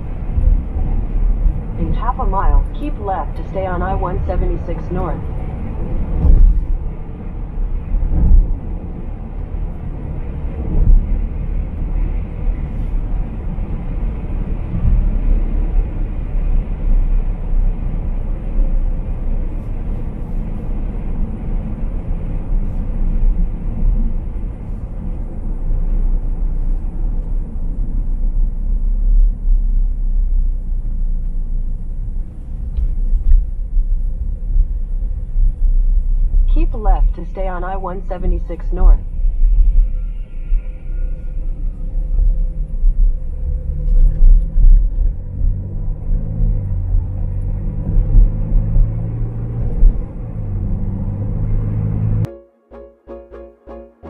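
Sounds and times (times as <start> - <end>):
car cabin road rumble: 0.0 - 52.3.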